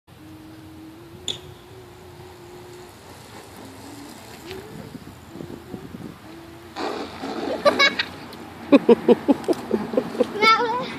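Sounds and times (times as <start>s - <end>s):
person humming: 0.1s - 7.6s
person laughing: 6.7s - 10.4s.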